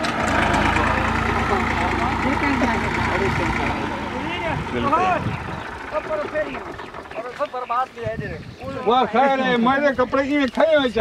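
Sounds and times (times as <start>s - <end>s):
diesel tractor engine rumble: 0.0s - 7.7s.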